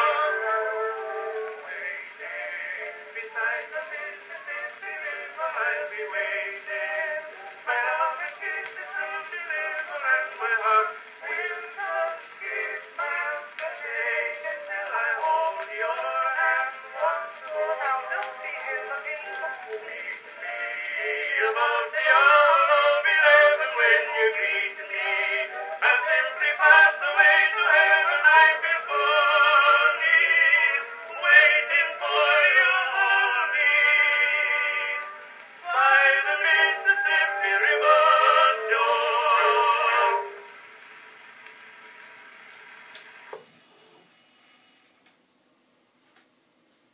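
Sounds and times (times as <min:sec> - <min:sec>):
phonograph recording of singing: 0:00.0 - 0:43.6
phonograph surface hiss: 0:00.0 - 0:46.9.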